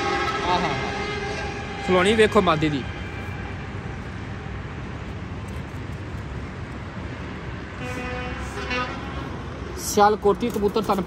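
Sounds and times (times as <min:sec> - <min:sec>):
vehicle horn: 0:00.0 - 0:02.4, 0:07.8 - 0:09.4
street traffic rumble: 0:00.0 - 0:11.0.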